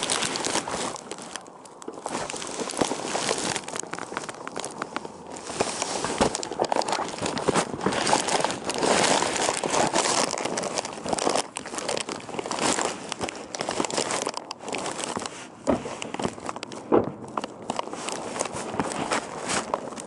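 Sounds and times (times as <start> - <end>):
rustling handling noise: 0.0 - 20.0.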